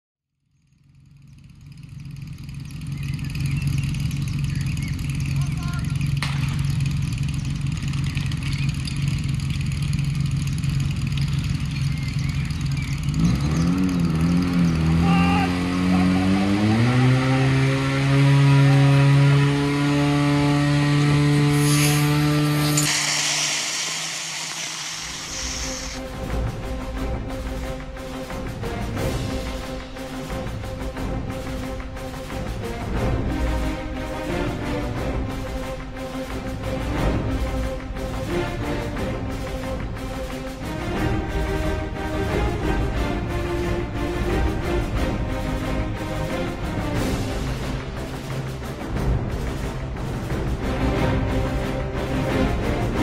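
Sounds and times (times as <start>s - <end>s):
engine running and revving: 0.4s - 53.0s.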